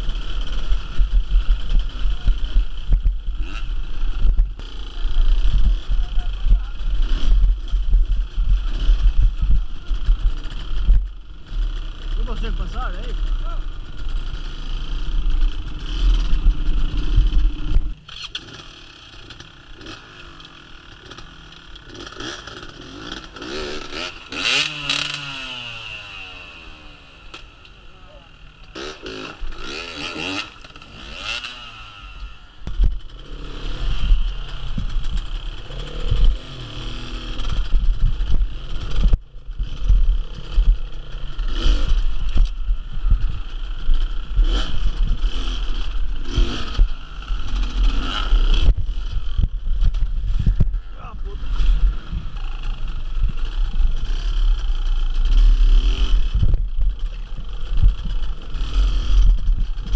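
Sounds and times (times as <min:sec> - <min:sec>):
dirt bike engines revving: 0:00.0 - 0:59.9
loud close engine rumble: 0:00.0 - 0:59.9.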